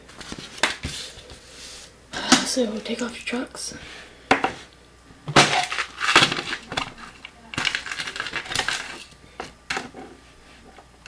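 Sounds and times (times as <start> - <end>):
small metal parts clicking and clattering: 5.4 - 9.2.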